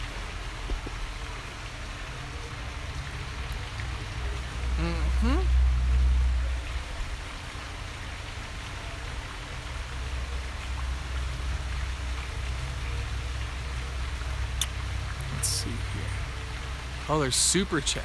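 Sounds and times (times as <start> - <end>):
outdoor background hiss: 0.0 - 18.0.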